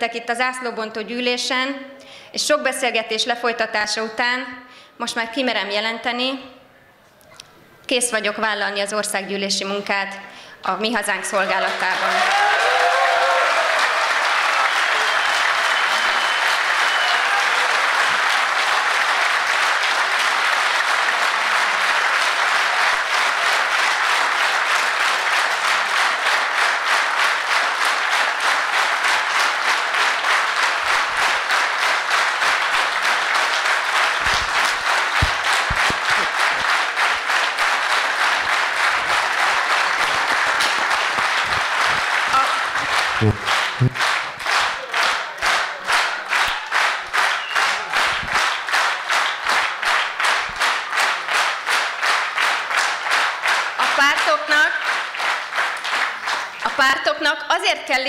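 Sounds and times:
crowd clapping in unison: 11.0s - 57.1s
large audience applauding: 11.1s - 57.0s.

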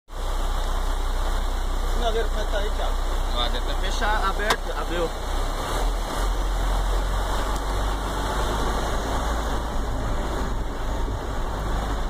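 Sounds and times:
vehicle engine idling: 0.1s - 12.0s.

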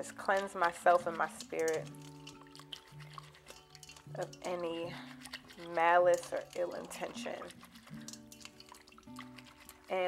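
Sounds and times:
soft music of held notes: 0.0s - 10.0s
water dripping and splashing: 0.0s - 10.0s.

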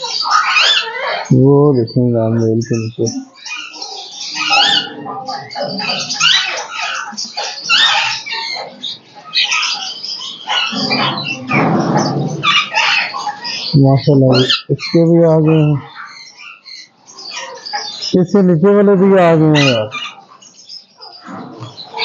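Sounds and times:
parakeets squawking: 0.0s - 22.0s.

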